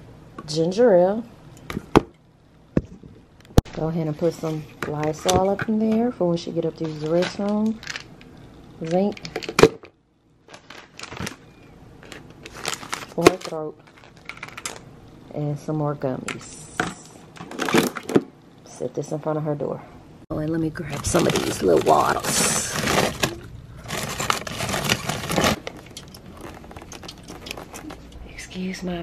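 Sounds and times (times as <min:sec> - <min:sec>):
plastic bottles crinkling: 0:06.7 - 0:14.8, 0:16.8 - 0:18.3, 0:20.7 - 0:28.2
packaging rustling: 0:10.4 - 0:14.8, 0:20.8 - 0:28.2.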